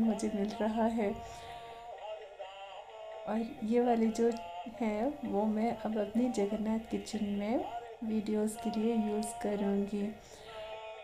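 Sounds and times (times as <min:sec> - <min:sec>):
toy playing electronic sung tune: 0:00.0 - 0:11.0.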